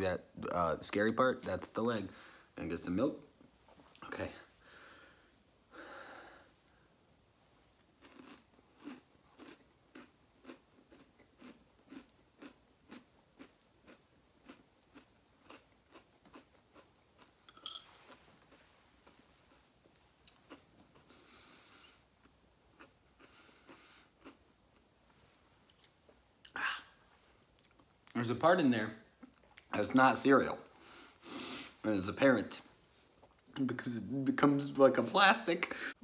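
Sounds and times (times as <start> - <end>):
person breathing: 2.1 - 2.6, 4.6 - 6.9, 30.7 - 31.8
chewing cereal close-up: 7.8 - 17.4, 22.2 - 24.9.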